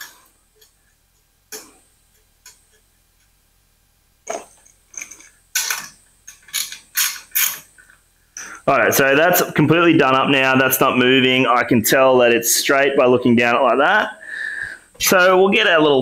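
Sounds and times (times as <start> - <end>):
metal bolt clicking: 4.3 - 7.7.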